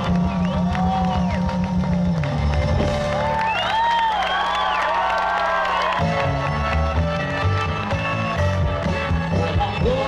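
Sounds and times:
live rock band playing: 0.0s - 4.0s, 5.7s - 10.0s.

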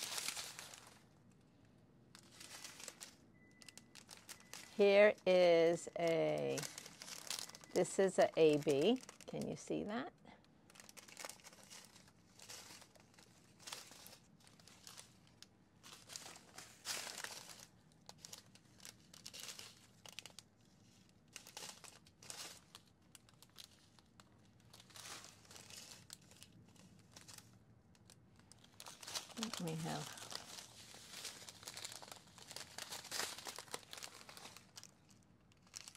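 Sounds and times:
plastic bags crinkling: 0.0s - 1.5s, 2.1s - 35.9s.

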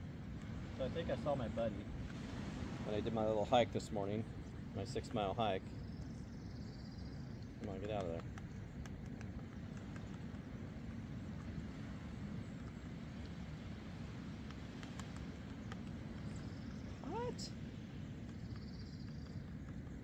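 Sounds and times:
low outdoor rumble: 0.0s - 20.0s.

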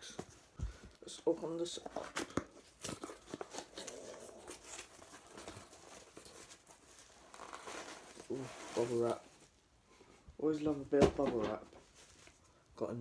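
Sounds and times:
rustling of card and packing: 0.0s - 9.6s, 10.5s - 12.7s
cardboard ripping: 1.9s - 9.2s.

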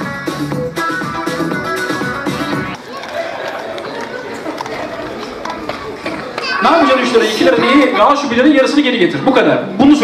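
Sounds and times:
indistinct voices talking: 2.7s - 10.0s.

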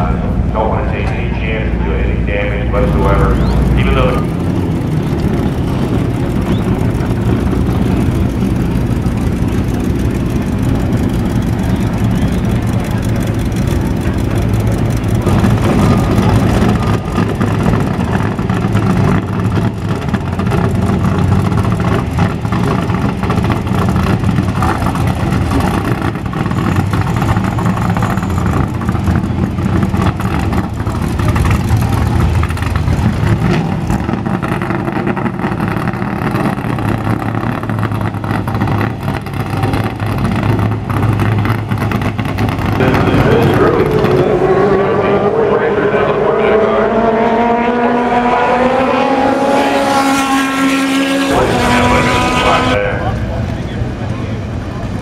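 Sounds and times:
people talking: 0.0s - 4.3s, 42.8s - 47.2s, 51.3s - 55.0s
car engines rumbling: 0.0s - 55.0s.

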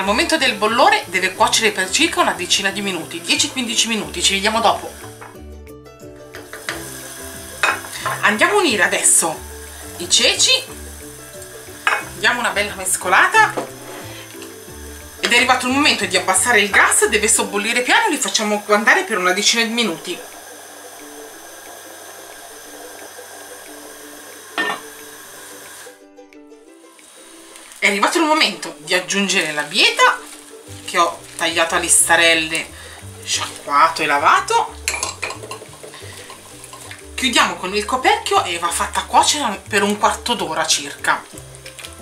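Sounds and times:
soft background music: 0.0s - 42.0s
soup sizzling in a pot: 0.0s - 42.0s.

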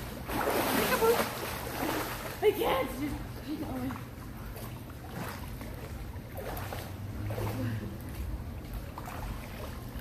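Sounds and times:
pool water lapping: 0.0s - 10.0s
steady low hum: 0.0s - 10.0s.

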